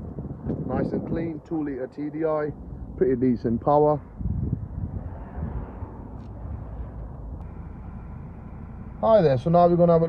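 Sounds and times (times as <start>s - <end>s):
diesel engine idling: 6.0s - 10.0s.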